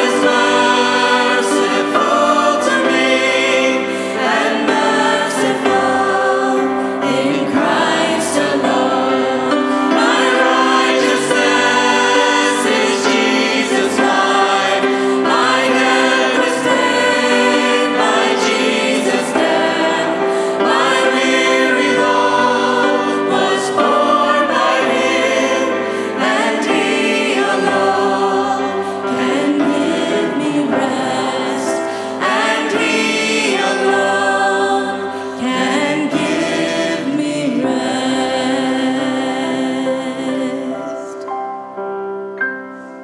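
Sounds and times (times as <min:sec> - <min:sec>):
group singing a hymn: 0:00.0 - 0:41.3
grand piano: 0:00.0 - 0:43.0.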